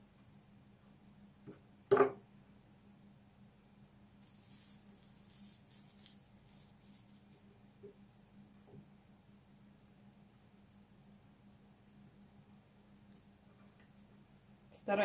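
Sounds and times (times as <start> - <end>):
flux sizzling under soldering iron: 4.2 - 7.4.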